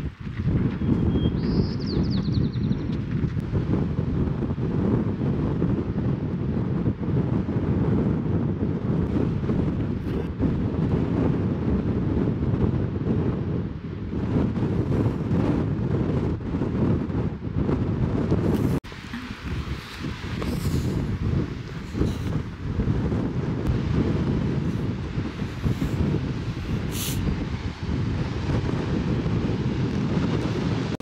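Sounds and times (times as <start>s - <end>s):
wind buffeting microphone: 0.0s - 31.0s.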